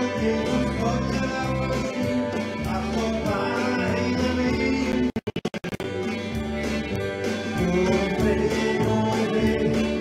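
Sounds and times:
country gospel band playing live: 0:00.0 - 0:05.2, 0:05.8 - 0:10.0
accordion: 0:00.0 - 0:10.0
drums: 0:00.0 - 0:10.0
electric guitars: 0:00.0 - 0:10.0.

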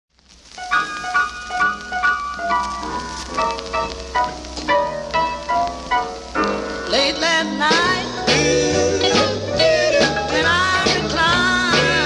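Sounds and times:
gospel instrumental notes: 0:00.5 - 0:12.0.

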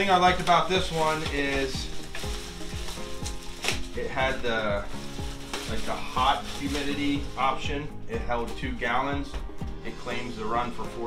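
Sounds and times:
plastic bag crinkling: 0:00.0 - 0:07.7
background music with steady beat: 0:00.0 - 0:11.0.

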